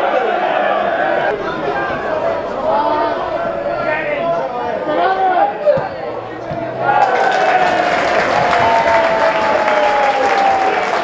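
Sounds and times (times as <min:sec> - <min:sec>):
football crowd cheering: 0:00.0 - 0:11.0.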